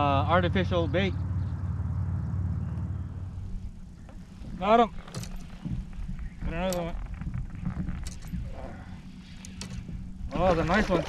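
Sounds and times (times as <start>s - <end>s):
low motor drone: 0.0s - 11.0s.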